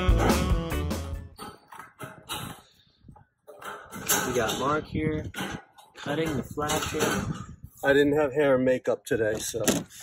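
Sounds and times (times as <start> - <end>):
man talking: 4.1 - 5.4, 6.0 - 9.9.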